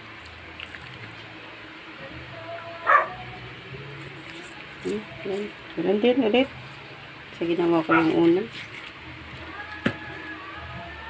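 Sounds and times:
dog barking: 0:02.9 - 0:03.2.

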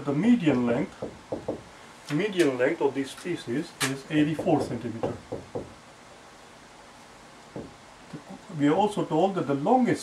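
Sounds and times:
marker tip knocking on whiteboard: 0:07.6 - 0:07.8.

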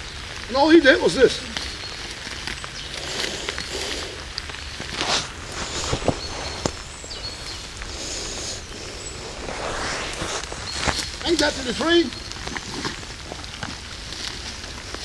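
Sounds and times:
footsteps in dry leaves: 0:00.0 - 0:15.0
steady rain hiss: 0:00.0 - 0:15.0.

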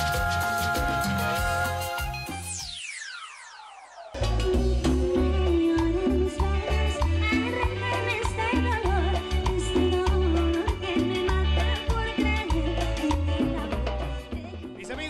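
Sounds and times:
person singing lead: 0:00.0 - 0:02.3
latin dance band music: 0:00.0 - 0:03.0, 0:04.0 - 0:15.0.

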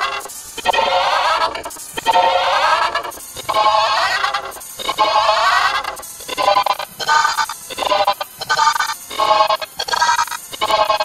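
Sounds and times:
chopped electronic tones: 0:00.0 - 0:11.0.

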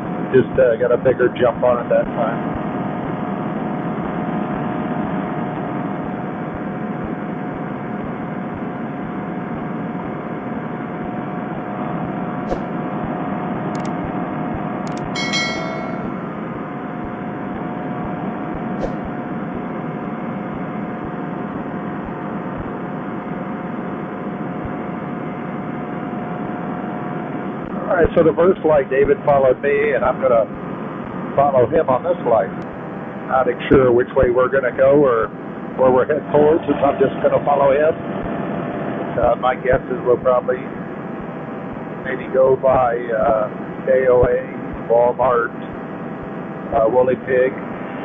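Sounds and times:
paramotor engine drone: 0:00.0 - 0:48.0
sharp clicks: 0:13.8 - 0:14.0, 0:14.8 - 0:15.2
short chime: 0:15.0 - 0:16.5.

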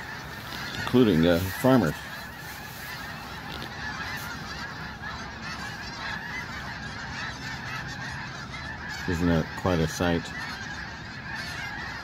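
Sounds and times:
flock of geese calling: 0:00.0 - 0:12.0.

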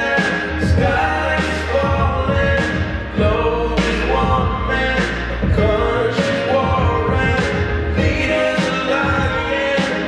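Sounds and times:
song with singer over beat: 0:00.0 - 0:10.0.

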